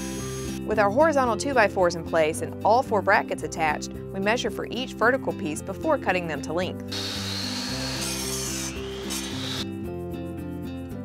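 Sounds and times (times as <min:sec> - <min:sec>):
miter saw cutting wood: 0:00.0 - 0:00.6, 0:06.9 - 0:09.7
background music: 0:00.0 - 0:11.0.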